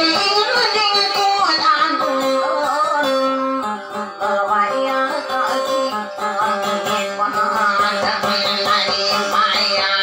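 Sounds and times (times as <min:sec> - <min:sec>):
acoustic guitar strumming: 0:00.0 - 0:10.0
woman singing: 0:00.0 - 0:10.0.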